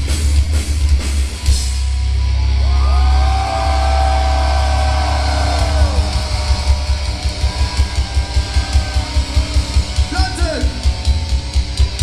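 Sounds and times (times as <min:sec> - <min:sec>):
pounding drum beat: 0:00.0 - 0:02.0, 0:03.4 - 0:12.0
distorted electric guitar: 0:00.0 - 0:12.0
heavy bass: 0:00.0 - 0:12.0.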